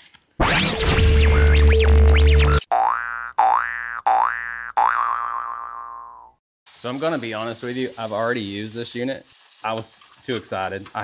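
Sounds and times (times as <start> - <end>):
cartoon boing sounds: 2.7 - 6.4.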